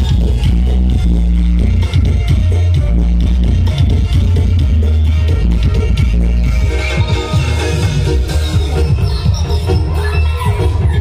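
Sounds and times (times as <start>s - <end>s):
loud music with deep bass: 0.0s - 11.0s.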